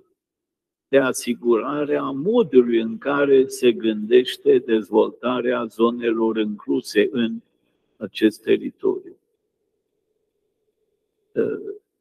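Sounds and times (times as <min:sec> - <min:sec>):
faint steady hum: 0:00.0 - 0:12.0
man's throat noise: 0:11.4 - 0:11.9.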